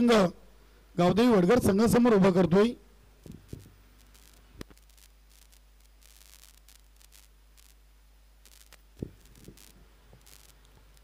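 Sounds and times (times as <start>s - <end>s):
faint low hum: 0.0s - 11.0s
soft hiss: 0.0s - 11.0s.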